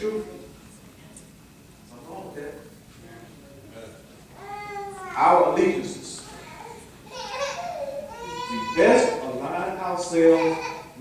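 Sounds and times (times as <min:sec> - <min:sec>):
man preaching: 0:05.1 - 0:06.5, 0:08.3 - 0:11.0.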